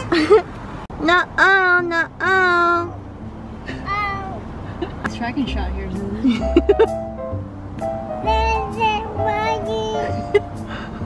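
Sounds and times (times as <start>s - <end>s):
child calling out: 3.8s - 4.4s.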